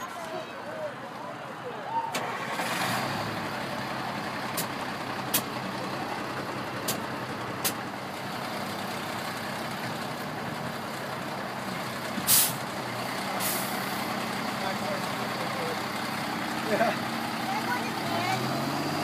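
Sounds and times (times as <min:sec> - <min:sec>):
diesel engine idling: 0:00.0 - 0:19.0
air hiss: 0:12.3 - 0:12.6.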